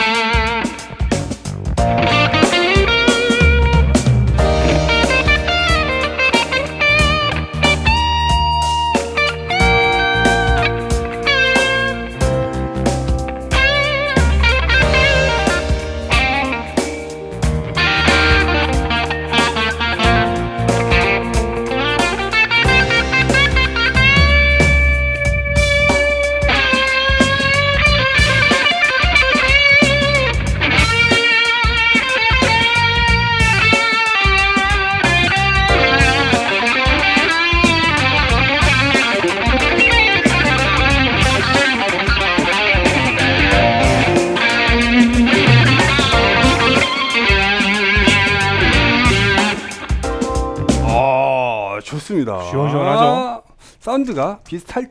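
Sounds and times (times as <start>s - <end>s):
electric guitar lead: 0.0s - 51.5s.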